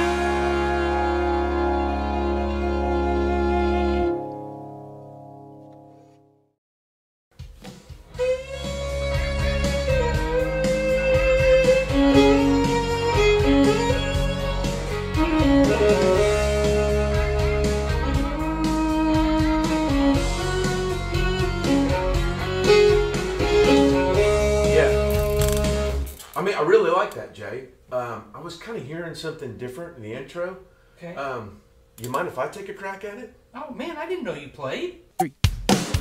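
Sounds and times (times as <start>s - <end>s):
fiddle playing long slides: 0.0s - 4.2s, 8.2s - 24.6s
country band accompaniment: 8.1s - 25.1s.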